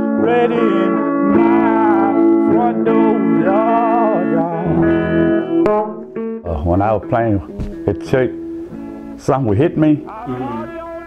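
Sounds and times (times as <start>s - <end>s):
man singing wordless vocal: 0.0s - 6.7s, 9.4s - 11.0s
electric guitar blues figure: 0.0s - 11.0s.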